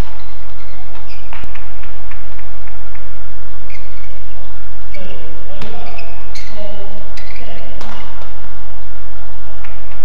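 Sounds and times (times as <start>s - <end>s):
shoes squeaking on court: 0.6s - 1.7s, 4.9s - 8.3s.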